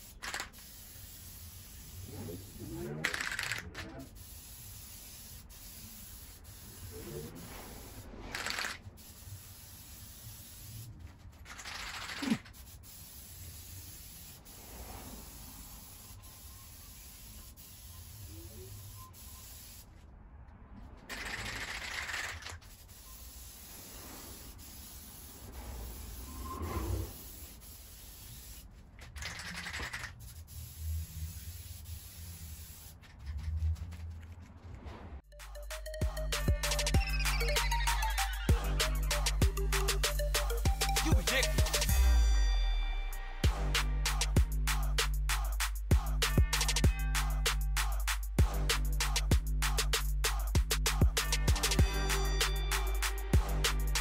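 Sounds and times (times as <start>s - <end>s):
aerosol spray can hissing: 0.0s - 19.9s, 21.1s - 33.0s, 36.4s - 42.0s, 44.1s - 54.0s.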